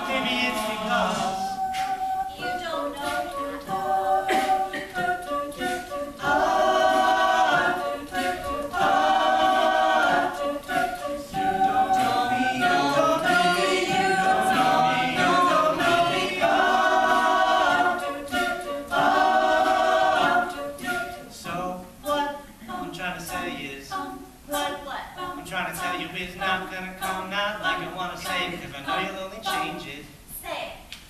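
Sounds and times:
a cappella group singing chords: 0.0s - 30.2s.

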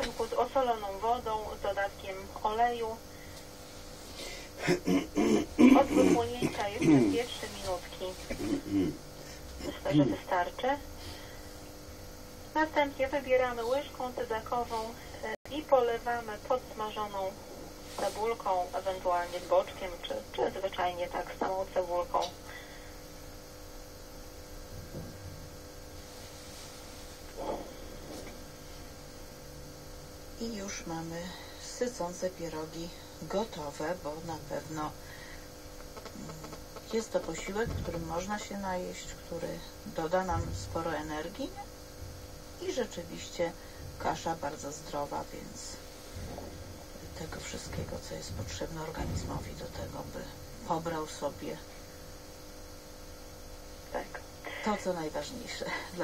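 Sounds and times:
telephone line hum and hiss: 0.0s - 56.0s
person talking over a radio: 4.7s - 9.0s, 9.6s - 10.8s.

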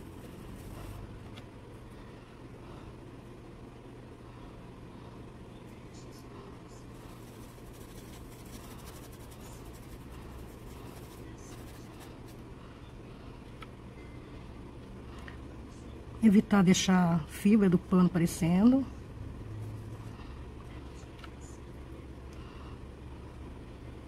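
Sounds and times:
paintbrush scrubbing cloth: 0.0s - 1.0s, 7.0s - 12.4s
steady low hum: 0.0s - 24.0s.

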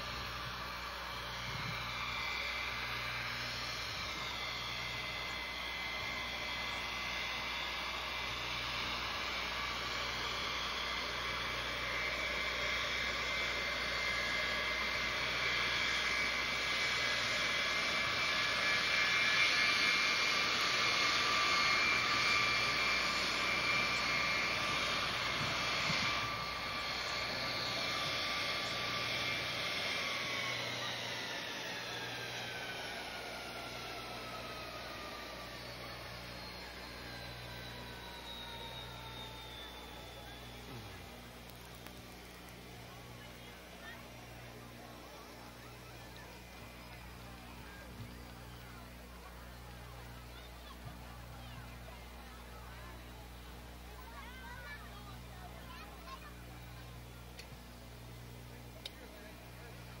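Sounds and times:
jet engines whining: 0.0s - 60.0s.

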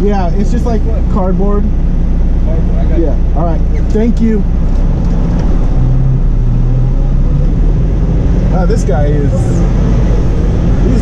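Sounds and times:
diesel truck engine running: 0.0s - 11.0s.

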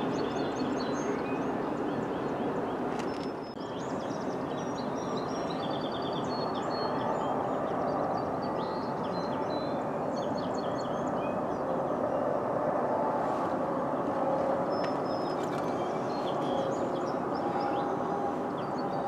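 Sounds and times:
small birds chirping: 14.6s - 19.0s.

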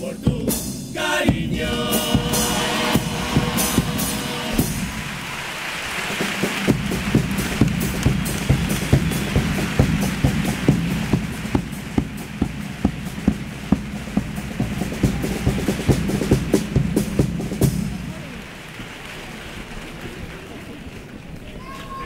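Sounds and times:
percussion steady beat: 0.0s - 18.7s
low instrumental accompaniment: 1.3s - 5.1s
audience applause: 1.7s - 22.0s.

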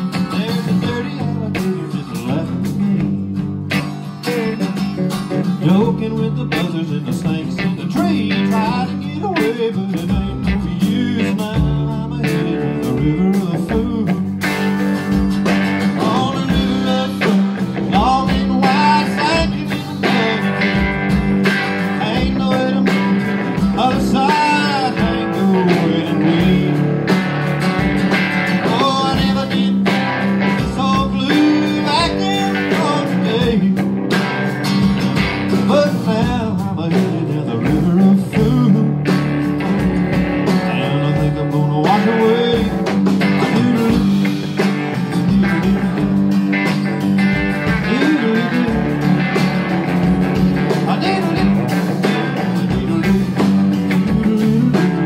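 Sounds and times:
drums: 0.0s - 55.0s
electric guitar: 0.0s - 55.0s
strummed acoustic guitar: 0.0s - 55.0s.

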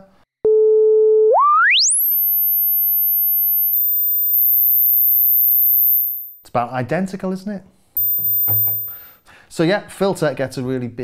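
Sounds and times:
synthesizer tone rising to high whistle: 1.3s - 3.0s.

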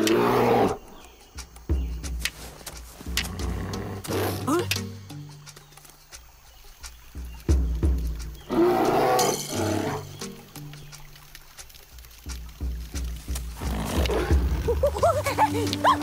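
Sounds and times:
background music with low notes: 0.0s - 16.0s.

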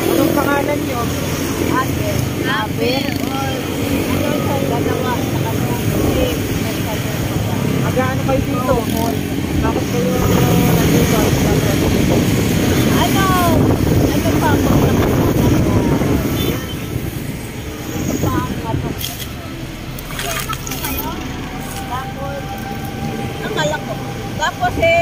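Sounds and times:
wind buffeting microphone: 3.5s - 25.0s.

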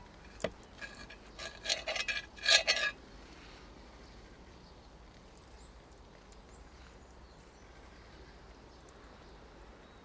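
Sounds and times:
knife scraping and sawing toast: 0.8s - 3.0s.

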